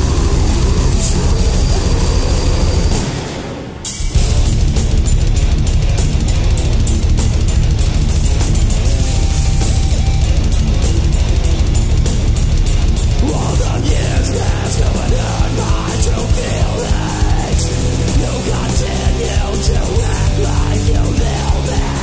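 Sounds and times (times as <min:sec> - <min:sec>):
heavy metal band playing: 0:00.0 - 0:22.0
fast drumming: 0:03.9 - 0:22.0.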